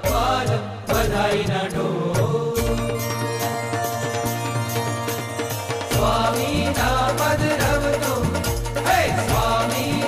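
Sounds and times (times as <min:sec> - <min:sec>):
chanted vocal line: 0:00.0 - 0:10.0
percussion strikes: 0:00.0 - 0:10.0
sustained instrumental tones: 0:02.6 - 0:08.2.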